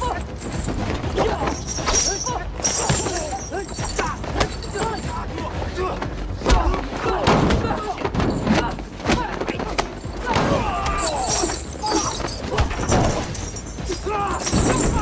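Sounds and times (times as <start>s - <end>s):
fighters grunting and shouting: 0.0s - 15.0s.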